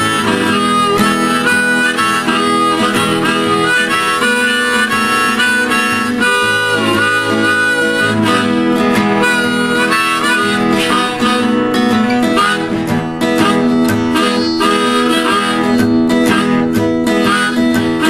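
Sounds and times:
acoustic guitar accompaniment: 0.0 - 18.0
harmonica playing blues: 0.0 - 18.0.

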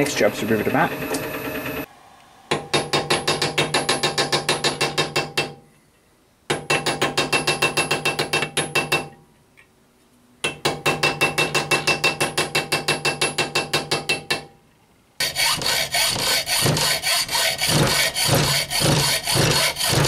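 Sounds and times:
rasping strokes on metal: 15.2 - 20.0.

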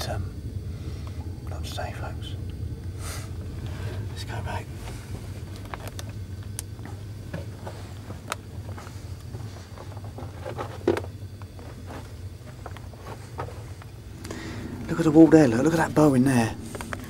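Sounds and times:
low steady hum: 0.0 - 17.0
footsteps on loose rubble: 6.8 - 13.9.

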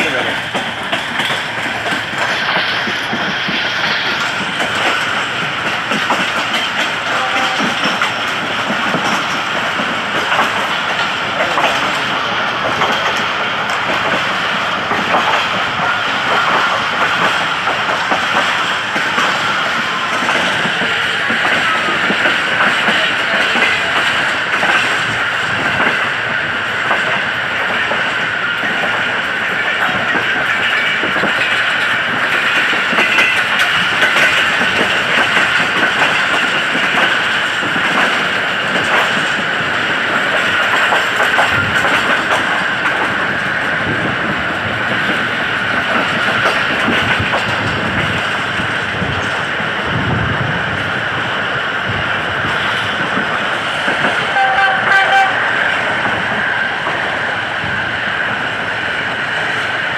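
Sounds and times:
train coach rumble and rattle: 0.0 - 59.9
locomotive horn note: 54.3 - 55.5.

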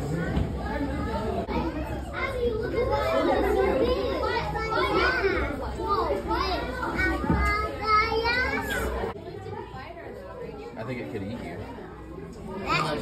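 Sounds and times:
children talking and calling out: 0.0 - 13.0
crowd chatter: 0.0 - 13.0.

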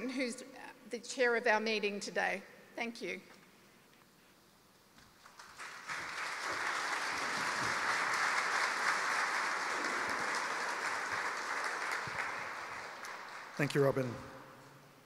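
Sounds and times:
audience applauding: 5.2 - 14.3.

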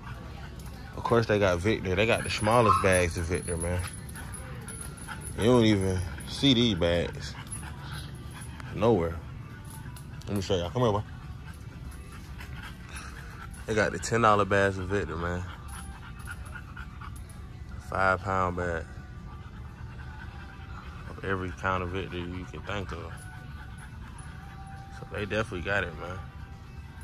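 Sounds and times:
low background hum: 0.0 - 27.0
puppy panting: 0.0 - 27.0.

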